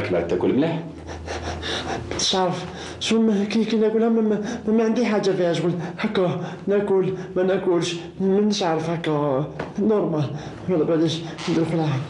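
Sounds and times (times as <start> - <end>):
man talking: 0.0 - 1.0, 2.1 - 12.0.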